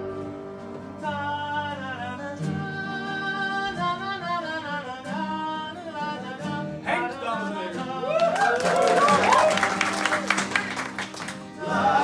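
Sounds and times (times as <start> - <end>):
folk ensemble playing: 0.0 - 12.0
whooping voices: 8.0 - 10.6
hand-clapping: 8.2 - 11.6
voices singing: 11.5 - 12.0.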